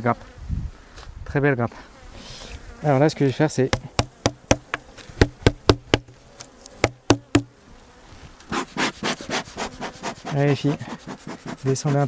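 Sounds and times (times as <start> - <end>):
bees buzzing: 2.0 - 12.0
knocking on wooden feeder: 3.7 - 6.1, 6.8 - 7.5.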